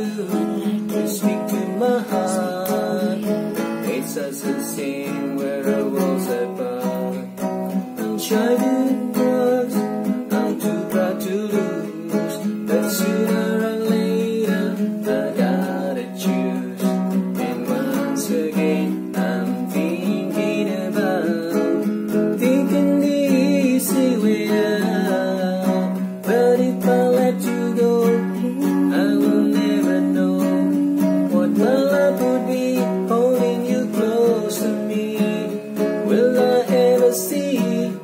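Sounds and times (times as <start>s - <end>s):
classical guitar chords: 0.0s - 38.0s
person singing: 0.0s - 38.0s.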